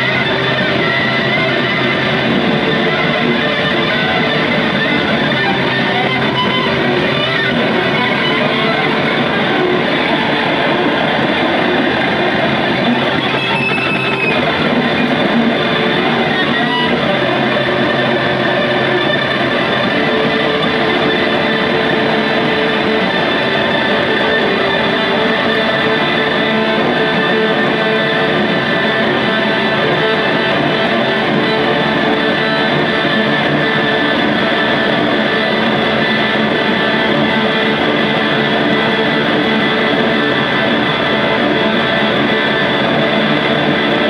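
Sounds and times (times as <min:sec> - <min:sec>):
distorted electric guitar noise: 0:00.0 - 0:44.0.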